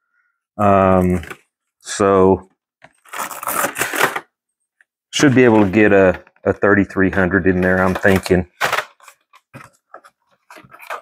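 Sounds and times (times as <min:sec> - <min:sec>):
crinkles and scrapes of foam and wire: 0:05.2 - 0:06.4, 0:07.6 - 0:11.0.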